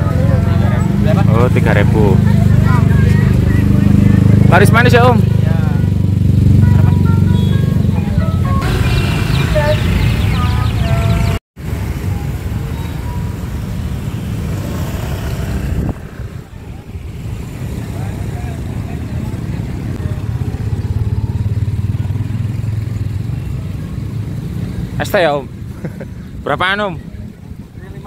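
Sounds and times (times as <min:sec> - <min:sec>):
motorbike engines passing: 0:00.0 - 0:28.0.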